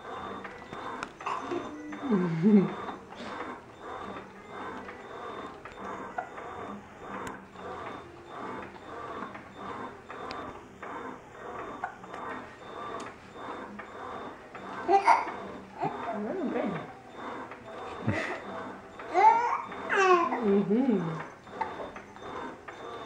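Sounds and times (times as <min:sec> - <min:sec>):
electric baby swing running: 0:00.0 - 0:23.0.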